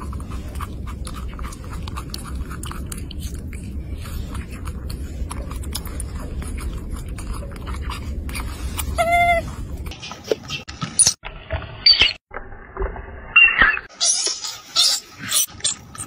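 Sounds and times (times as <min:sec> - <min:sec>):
macaques squealing: 0:08.8 - 0:10.6
infant monkey shrieking: 0:08.9 - 0:09.5.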